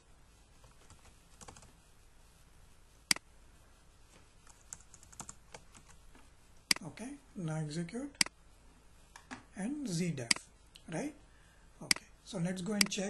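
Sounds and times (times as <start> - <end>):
computer keyboard clicking: 4.5 - 5.6.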